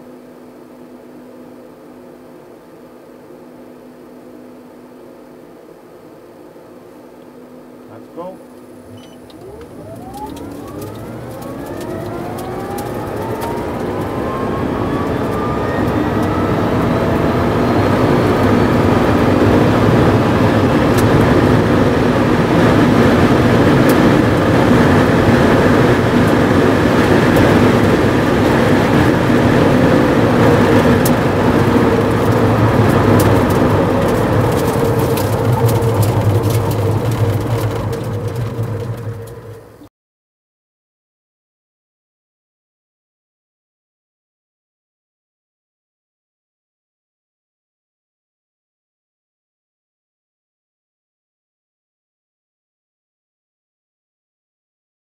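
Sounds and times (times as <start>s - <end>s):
electric motor whine rising: 0.0s - 39.8s
road and wind noise rushing: 8.9s - 39.7s.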